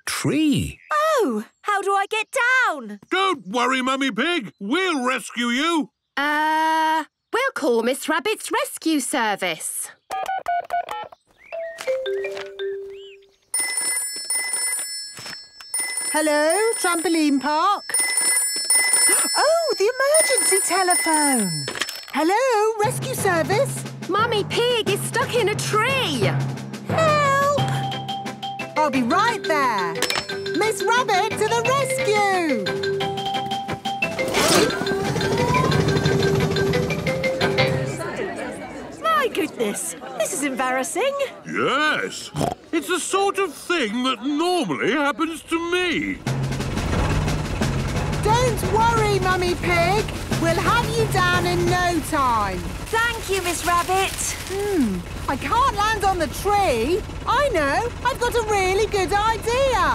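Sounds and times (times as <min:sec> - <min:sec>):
cartoon telephone ringing: 0:11.6 - 0:23.3, 0:27.4 - 0:38.0
cartoon helicopter hum and rotor: 0:29.2 - 0:37.8, 0:46.2 - 0:53.6, 0:54.8 - 0:59.9
faint murmuring voices: 0:37.4 - 0:41.5.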